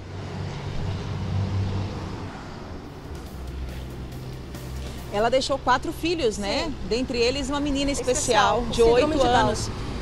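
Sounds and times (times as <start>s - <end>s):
outdoor street noise: 0.0s - 10.0s
vehicle engine rumbling: 0.0s - 10.0s.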